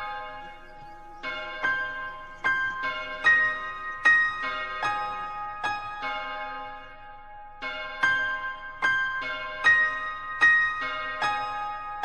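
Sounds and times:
large bell tolling: 0.0s - 12.0s.

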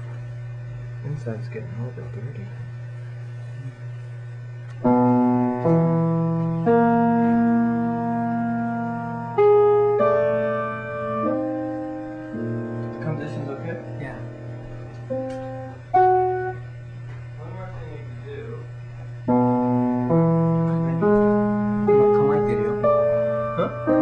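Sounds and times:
slow sparse piano: 4.8s - 17.4s, 18.8s - 24.0s.

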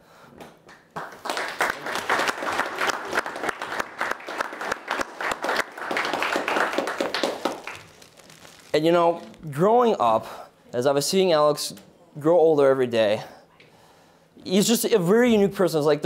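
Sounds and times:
people applauding: 0.7s - 8.7s.

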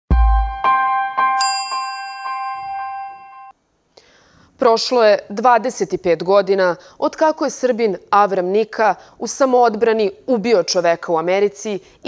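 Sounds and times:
bell-like jingle chimes: 1.4s - 3.5s.

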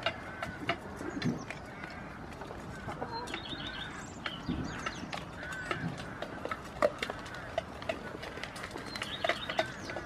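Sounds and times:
poultry clucking: 0.0s - 10.0s
small clicks and rustles: 0.0s - 10.0s.

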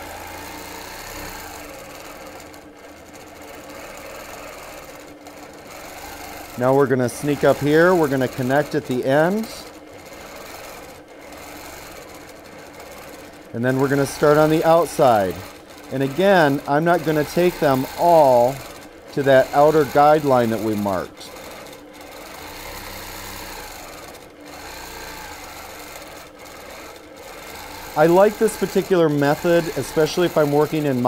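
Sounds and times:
quilting machine stitching: 0.0s - 31.0s.

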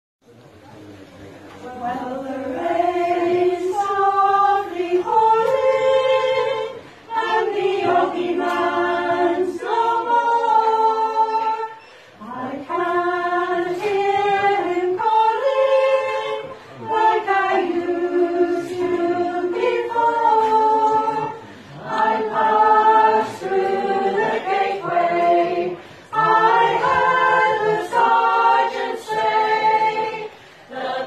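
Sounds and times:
women's choir singing in harmony: 1.6s - 31.0s.

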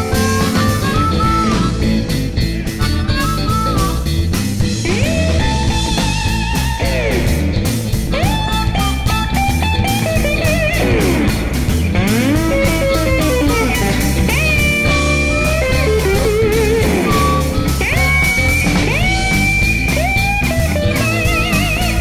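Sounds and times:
band playing steady rhythm: 0.0s - 22.0s
electric guitar blues solo: 0.0s - 22.0s.

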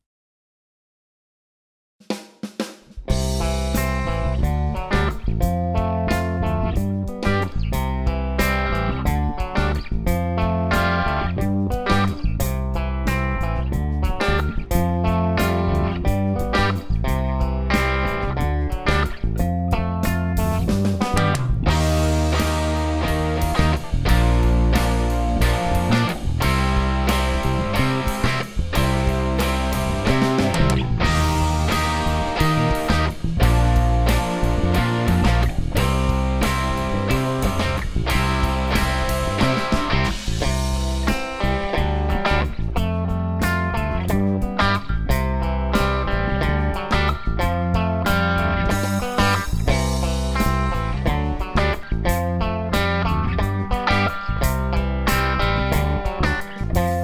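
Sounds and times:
drum kit playing: 2.0s - 57.0s
bass guitar: 3.0s - 57.0s
electric guitar fingerpicked: 3.1s - 57.0s.

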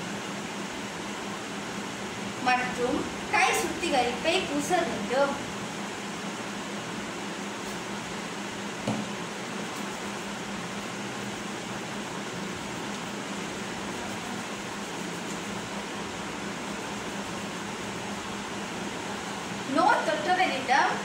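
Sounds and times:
fan-like hiss: 0.0s - 21.0s.

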